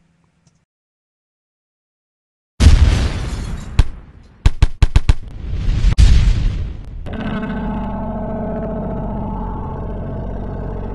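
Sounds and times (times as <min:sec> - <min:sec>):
deep hum: 0:06.4 - 0:10.9
drone of held tones: 0:07.0 - 0:10.9.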